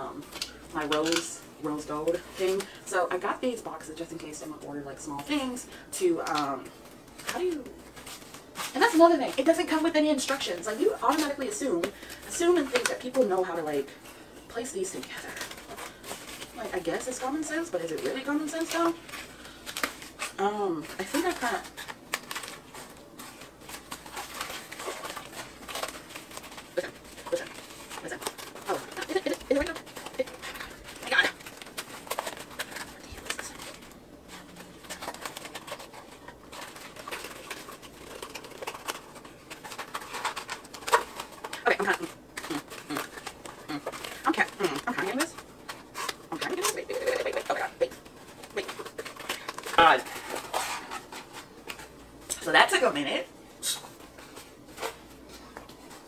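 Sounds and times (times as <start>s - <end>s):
woman murmuring: 26.8s - 31.4s.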